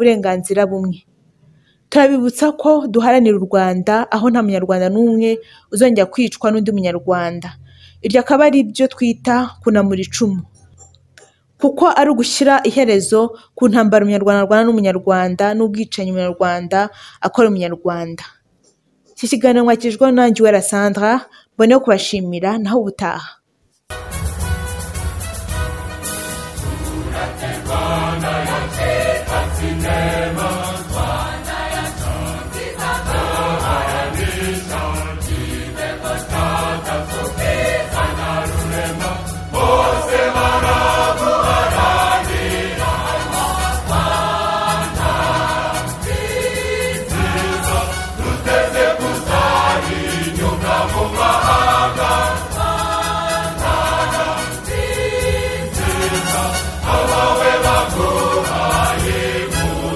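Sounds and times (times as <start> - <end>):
choir singing with instruments: 24.0 - 59.9.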